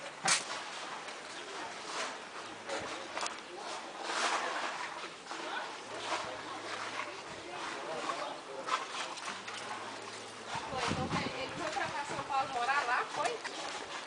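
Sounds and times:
short outdoor noises: 0.0 - 14.0.

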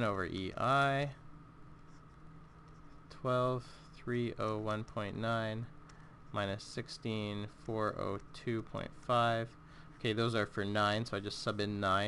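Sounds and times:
low background hiss: 0.0 - 12.0
stylus writing on tablet screen: 1.7 - 5.2, 6.3 - 11.8.

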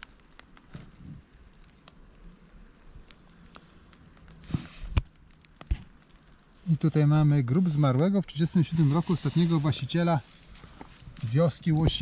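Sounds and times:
faint ticks and crackles: 0.0 - 12.0
outdoor hiss: 0.0 - 12.0.

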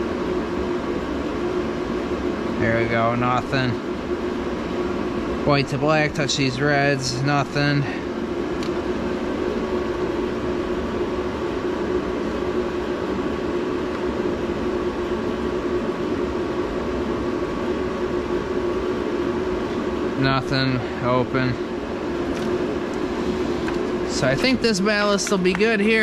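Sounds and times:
machinery humming drone: 0.0 - 26.0.

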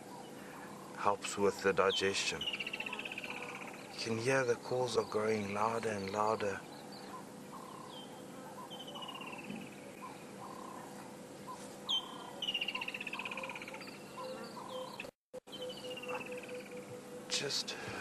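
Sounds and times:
birds chirping: 0.0 - 18.0
birds trilling: 0.0 - 18.0
faint steady hum: 0.0 - 18.0.

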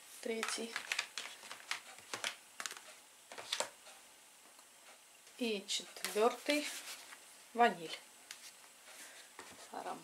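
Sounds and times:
plastic bottles clicking and knocking: 0.4 - 2.8.

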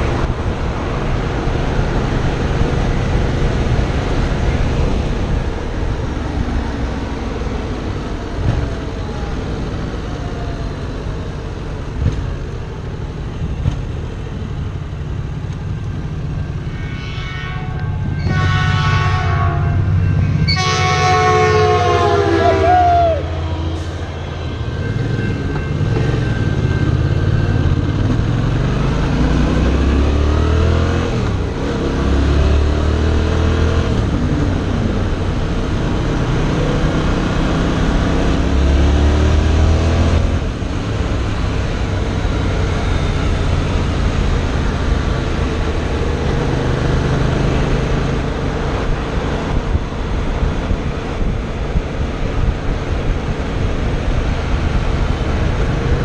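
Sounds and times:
wind: 0.0 - 56.0
train horn blasts: 16.4 - 26.8
motorcycle engine revving: 23.2 - 51.8.

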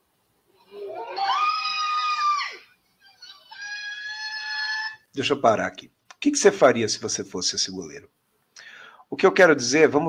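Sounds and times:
high-pitched screams: 0.5 - 5.1.

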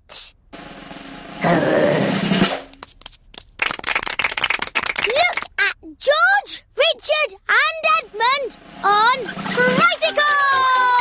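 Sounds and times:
snare drum roll: 0.6 - 2.8.

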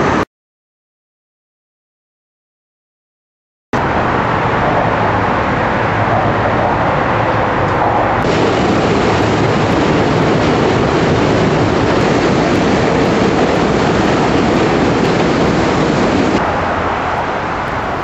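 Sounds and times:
subway train wheels on rails: 3.8 - 18.0.

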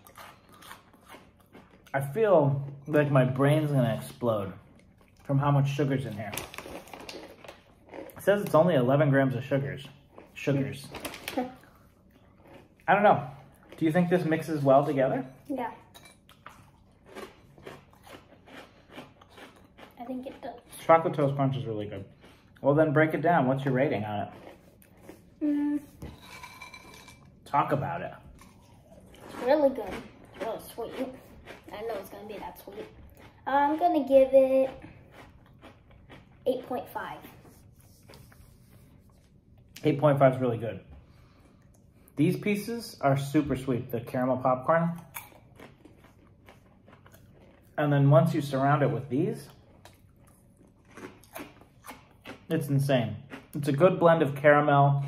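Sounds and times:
person chewing crunchy snack: 0.0 - 1.9, 6.5 - 8.3, 11.7 - 14.2, 16.3 - 20.8, 24.0 - 25.5, 28.3 - 31.9, 32.6 - 33.5, 34.7 - 36.7, 45.0 - 47.8, 49.5 - 52.5, 53.2 - 53.7.

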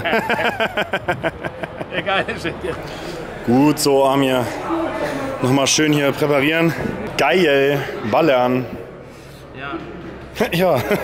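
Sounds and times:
men laughing: 0.0 - 3.4, 10.4 - 11.0.

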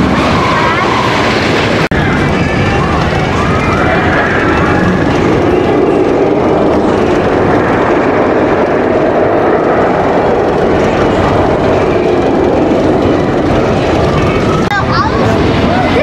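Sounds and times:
roller coaster rumbling on track: 0.0 - 16.0.

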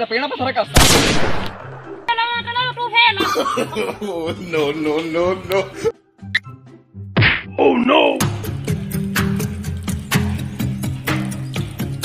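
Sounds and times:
low background music: 0.0 - 12.0
loud whack: 7.2 - 7.5.

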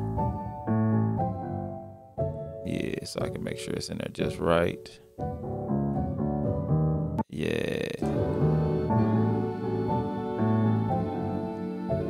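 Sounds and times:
sampled piano chord loop: 0.0 - 7.3, 8.0 - 12.0.

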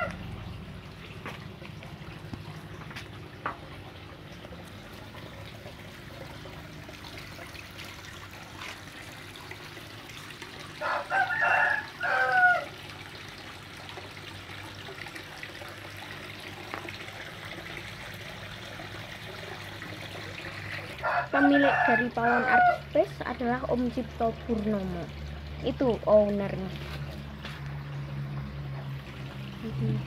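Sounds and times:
water trickling: 0.0 - 30.0
rooster crowing: 10.8 - 12.8, 21.0 - 22.8.

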